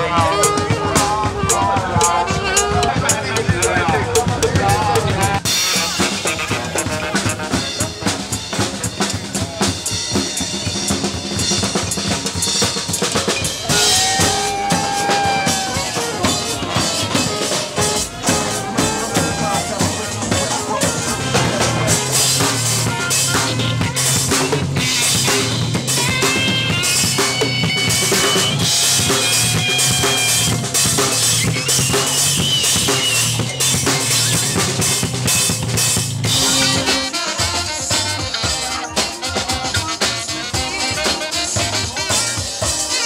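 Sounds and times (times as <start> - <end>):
drum kit fast groove: 0.0 - 43.0
second percussionist playing: 0.0 - 43.0.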